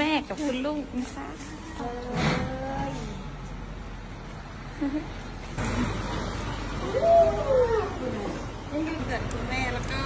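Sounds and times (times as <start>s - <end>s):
truck engine running: 0.0s - 10.0s.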